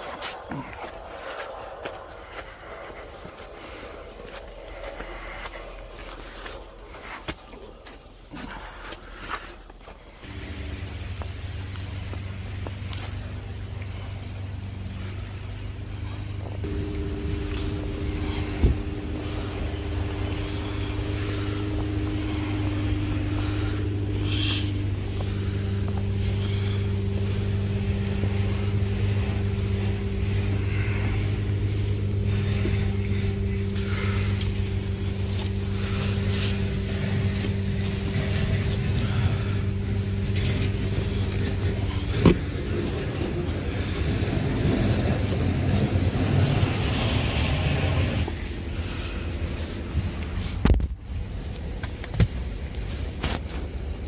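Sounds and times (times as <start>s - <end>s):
car engine idling: 0.0s - 54.0s.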